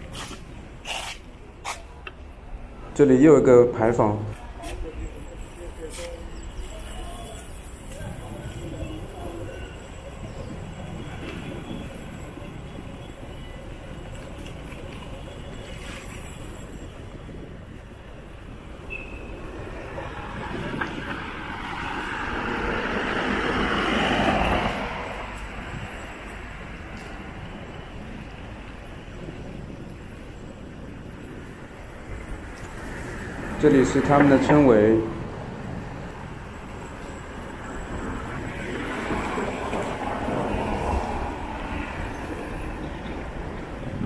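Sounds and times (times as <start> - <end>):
low street rumble: 0.0 - 44.0.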